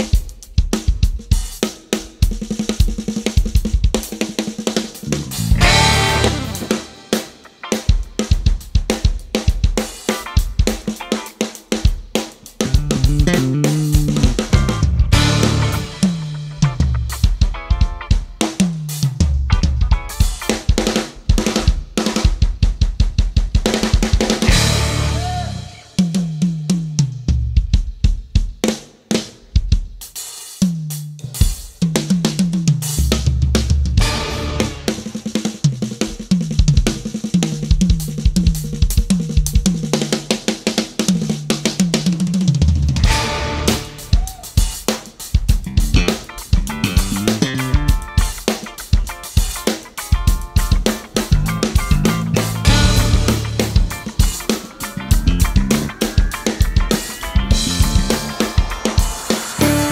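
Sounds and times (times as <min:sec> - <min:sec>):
drum kit solo: 0:00.0 - 0:59.9.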